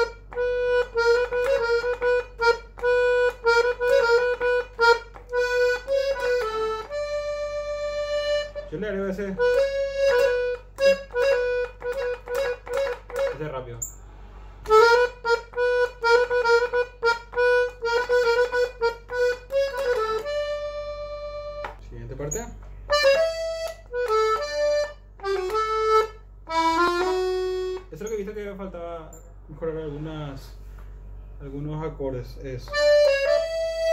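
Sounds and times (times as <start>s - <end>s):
accordion melody: 0.0s - 28.4s, 32.3s - 33.9s.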